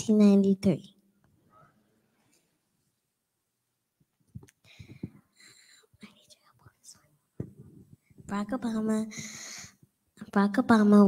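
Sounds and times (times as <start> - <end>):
faint whispering: 4.8 - 8.2.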